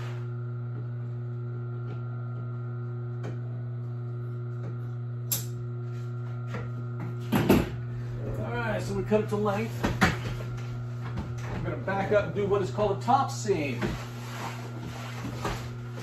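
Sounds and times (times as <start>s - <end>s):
electrical hum of workshop equipment: 0.0s - 16.0s
sharp click: 5.3s - 5.6s.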